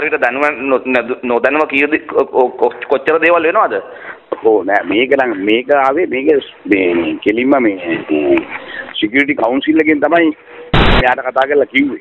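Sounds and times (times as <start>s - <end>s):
man talking over telephone: 0.0s - 12.0s.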